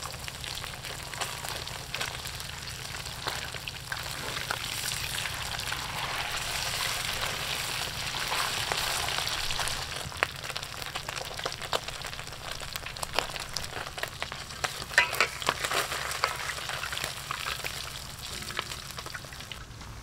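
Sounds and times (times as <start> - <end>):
fish deep-frying in oil: 0.0 - 20.0
oil crackling and popping: 0.0 - 20.0.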